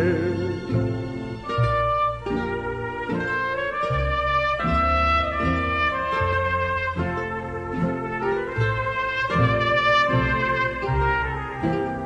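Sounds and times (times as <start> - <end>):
low bass line: 0.0 - 12.0
trumpets playing melody: 0.0 - 12.0.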